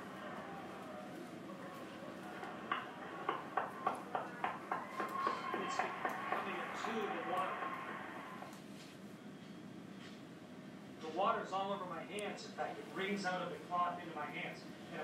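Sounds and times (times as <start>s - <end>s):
equipment hum: 0.0s - 15.0s
faint steady tones: 0.0s - 15.0s.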